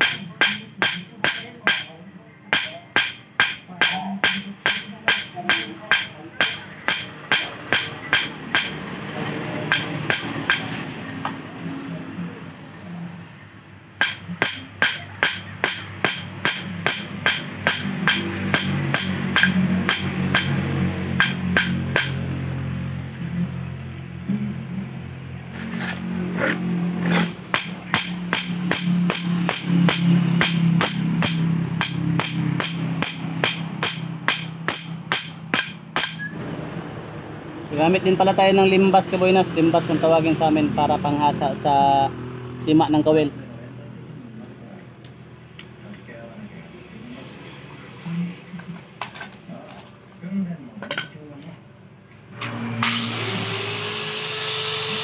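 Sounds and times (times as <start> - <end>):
hammer pounding metal wire: 0.0 - 9.0, 9.6 - 10.8, 14.0 - 22.4, 25.5 - 36.4.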